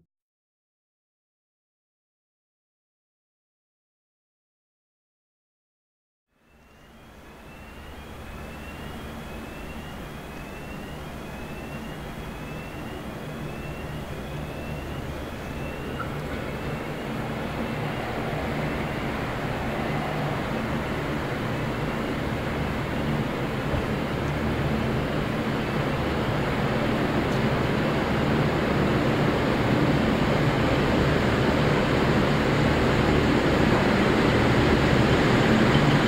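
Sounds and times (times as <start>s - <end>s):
train diesel engines humming: 6.4s - 36.0s.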